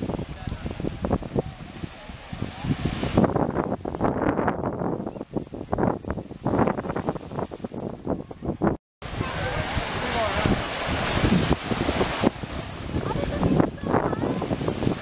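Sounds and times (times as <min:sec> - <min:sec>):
wind on microphone: 0:00.0 - 0:15.0
people talking indistinctly: 0:12.8 - 0:14.5.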